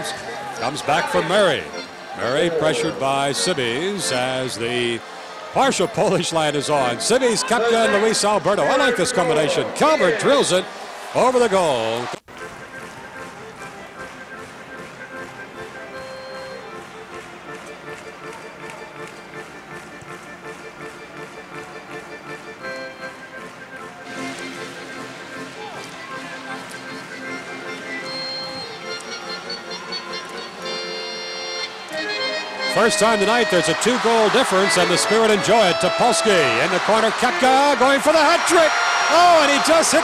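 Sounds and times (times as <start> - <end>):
arena music over loudspeakers: 0.0 - 40.0.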